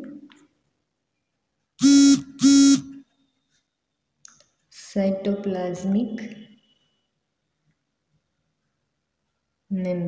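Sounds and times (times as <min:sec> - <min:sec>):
short loud buzzing tones: 0:01.8 - 0:03.3.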